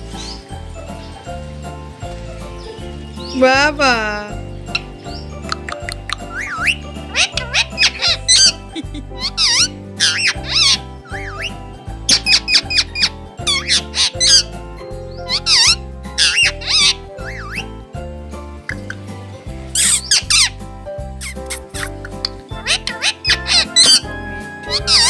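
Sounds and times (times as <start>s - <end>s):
parakeet squeaky calls: 0.0s - 1.3s, 2.3s - 17.8s, 19.7s - 20.6s, 21.2s - 25.0s
background music with steady beat: 0.0s - 25.0s.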